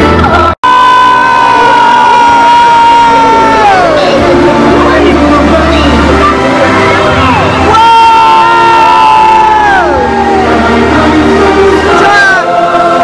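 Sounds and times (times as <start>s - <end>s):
crowd cheering: 0.0s - 13.0s
loud live stage music: 0.0s - 13.0s.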